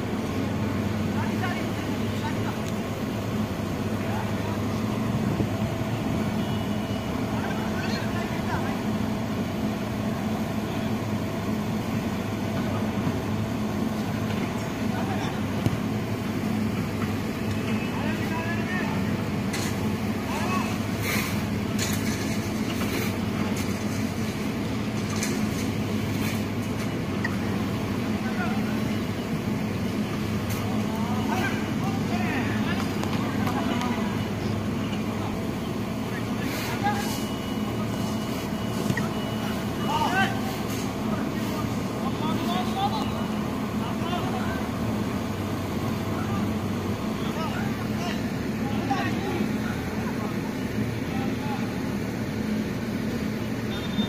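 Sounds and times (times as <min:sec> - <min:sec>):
players calling and shouting: 0:00.0 - 0:21.8, 0:25.6 - 0:54.0.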